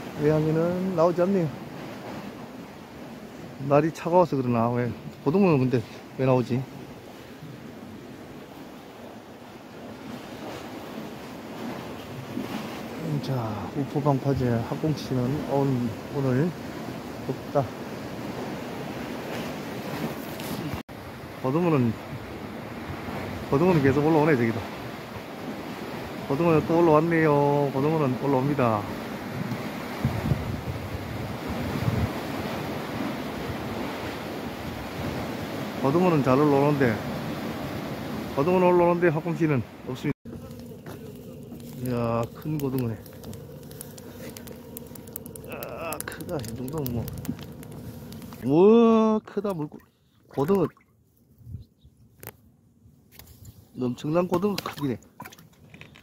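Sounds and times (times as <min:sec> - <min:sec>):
sea waves washing against concrete: 0:00.0 - 0:50.8
wind on microphone: 0:28.8 - 0:35.8, 0:40.3 - 0:48.5, 0:51.4 - 0:52.0.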